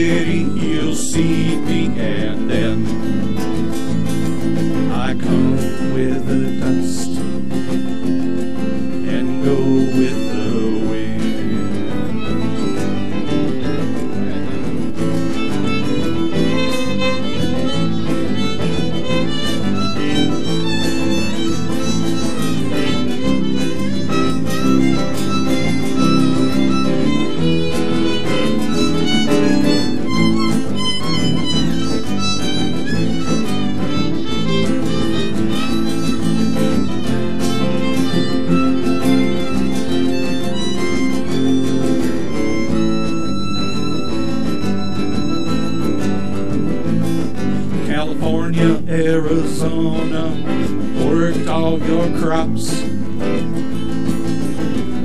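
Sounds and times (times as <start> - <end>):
fiddle playing: 0.0 - 52.5
strummed acoustic guitars: 0.0 - 55.0.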